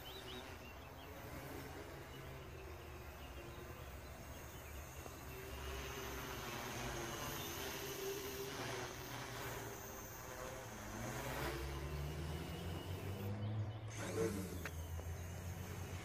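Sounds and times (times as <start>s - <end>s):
distant quadcopter hum: 0.0s - 16.0s.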